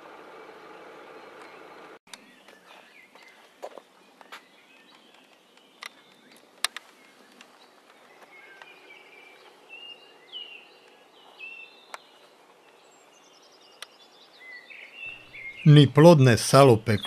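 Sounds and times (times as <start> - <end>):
small birds chirping: 0.3 - 17.0.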